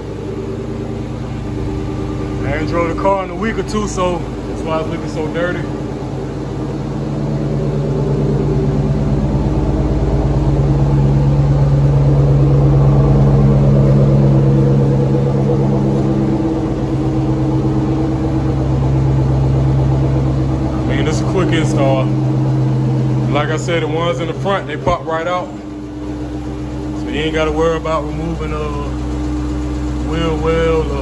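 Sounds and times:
car engine idling: 0.0s - 31.0s.

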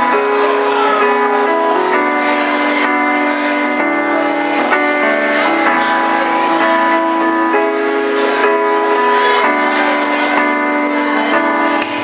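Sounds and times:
keyboard playing sustained chords: 0.0s - 12.0s.

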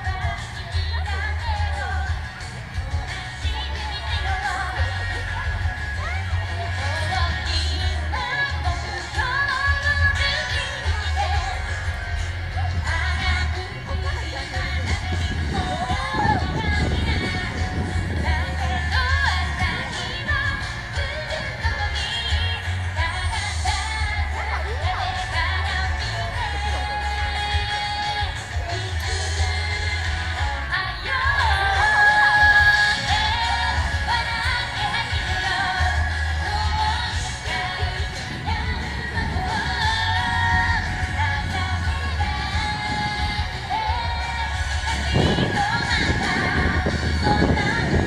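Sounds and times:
woman singing a pop song: 0.0s - 48.0s
wind buffeting microphone: 12.8s - 22.0s, 31.3s - 48.0s.

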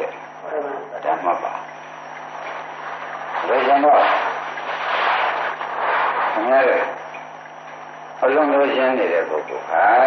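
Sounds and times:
faint high whine: 0.0s - 10.0s
recording hiss: 0.0s - 10.0s.

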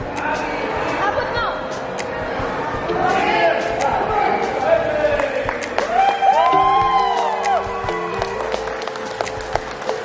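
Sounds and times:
music notes: 1.6s - 10.0s
people yelling: 5.9s - 8.2s.

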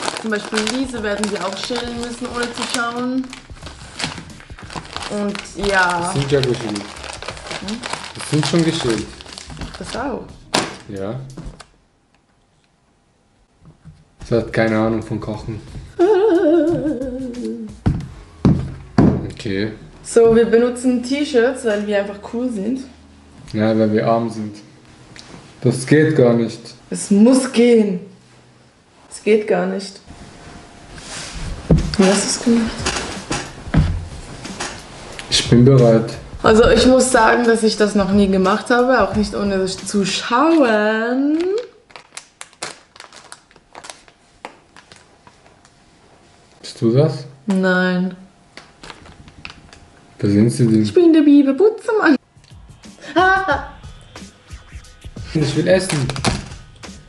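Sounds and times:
plastic wrapper crinkling: 0.0s - 11.7s, 40.3s - 45.7s, 48.6s - 49.9s.

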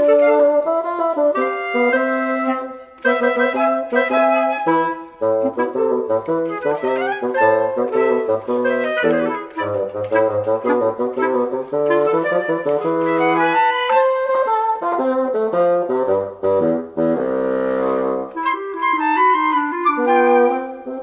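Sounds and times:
wind trio playing bouncy tune: 0.0s - 21.0s.

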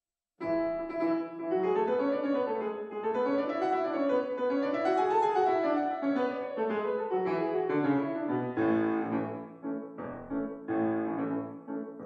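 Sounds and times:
solo piano: 0.4s - 12.0s.

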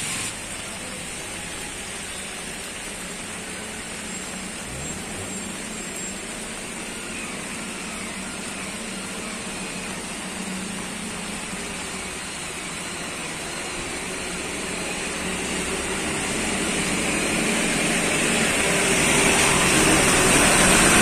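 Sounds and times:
broad hiss: 0.0s - 15.9s
steady engine hum: 0.0s - 21.0s.

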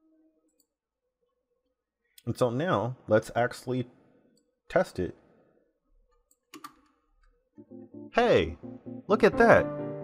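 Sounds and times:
computer mouse clicks: 6.1s - 7.3s.

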